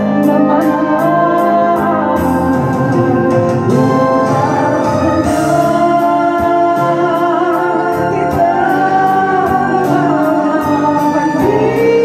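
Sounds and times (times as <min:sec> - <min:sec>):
karaoke backing music: 0:00.0 - 0:12.0
man singing into microphone: 0:00.0 - 0:12.0.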